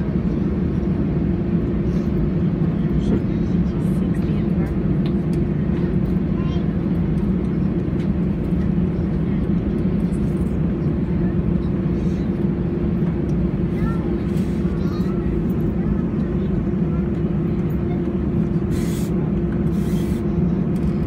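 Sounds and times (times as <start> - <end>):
aircraft engine rumble: 0.0 - 21.0
faint passenger voices: 0.0 - 21.0.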